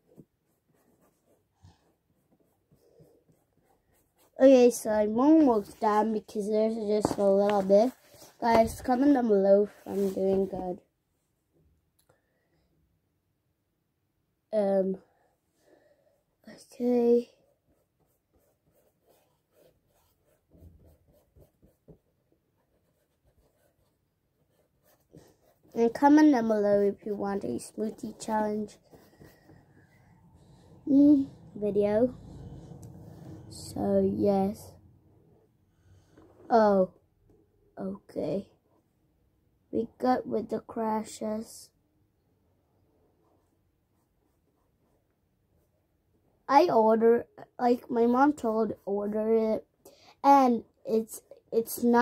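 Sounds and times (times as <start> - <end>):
paintbrush strokes on paper: 0.0 - 10.8, 16.6 - 36.6, 43.1 - 45.8.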